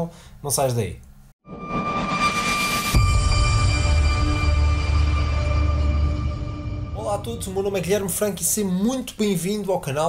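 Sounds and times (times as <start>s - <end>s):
rising whoosh: 1.5s - 8.3s
steady high tones: 1.5s - 8.8s
low dark drone: 1.6s - 8.2s
deep bass hit: 2.4s - 8.4s.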